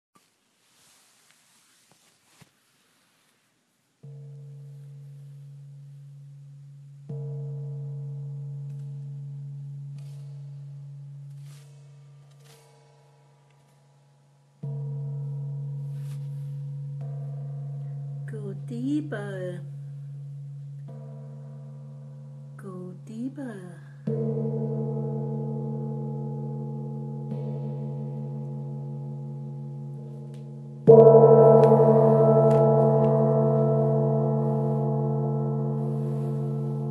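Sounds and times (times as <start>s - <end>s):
deep gong ringing: 24.0s - 36.9s.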